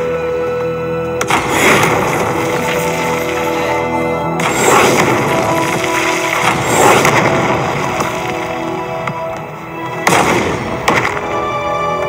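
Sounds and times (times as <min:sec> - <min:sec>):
film soundtrack music: 0:00.0 - 0:12.0
sharp hits: 0:01.2 - 0:09.3.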